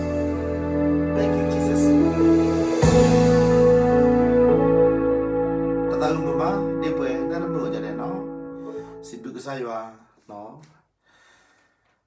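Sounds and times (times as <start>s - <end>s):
man speaking a syllable: 1.2s - 2.2s, 5.9s - 8.4s.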